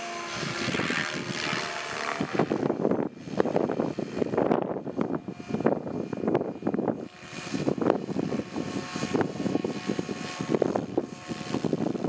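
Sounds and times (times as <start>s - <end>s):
radio-controlled helicopter whine: 0.0s - 12.0s.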